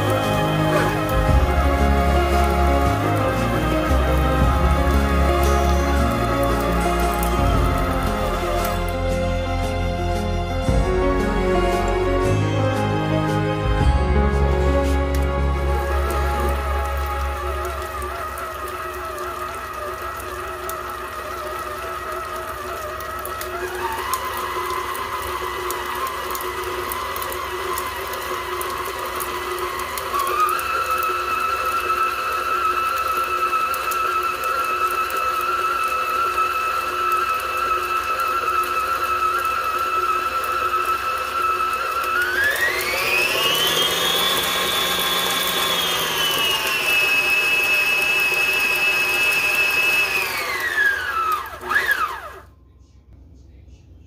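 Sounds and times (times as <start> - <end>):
beater churning meat: 0.0 - 52.4
stand mixer motor whine: 0.0 - 52.5.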